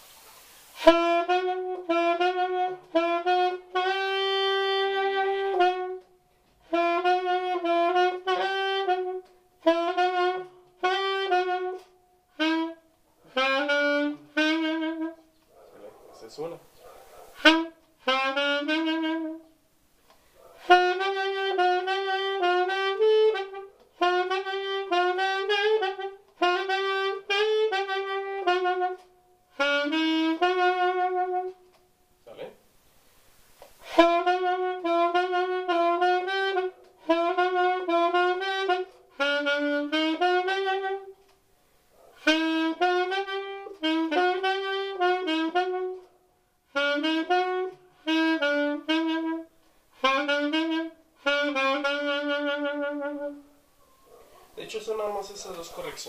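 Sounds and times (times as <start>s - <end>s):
solo saxophone melody: 0.0s - 15.4s, 17.4s - 19.7s, 20.6s - 32.6s, 33.7s - 41.5s, 42.2s - 53.7s
breath noise: 20.0s - 20.6s.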